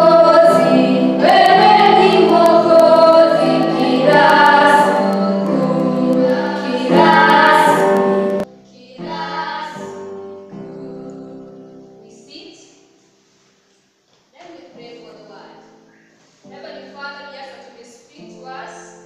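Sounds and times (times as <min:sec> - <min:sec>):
children singing a worship song: 0:00.0 - 0:12.4.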